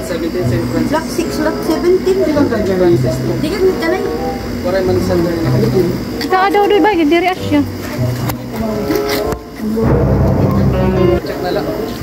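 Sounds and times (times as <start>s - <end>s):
people talking indistinctly: 0.0s - 12.0s
background music with bass line: 7.4s - 11.3s.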